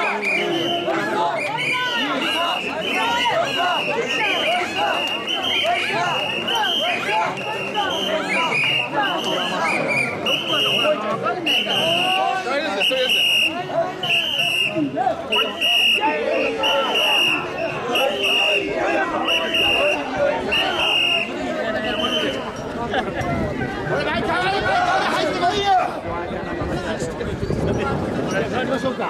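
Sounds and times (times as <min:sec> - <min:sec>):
crowd chanting and shouting: 0:00.0 - 0:29.0
whistle blown in short blasts: 0:00.2 - 0:21.3.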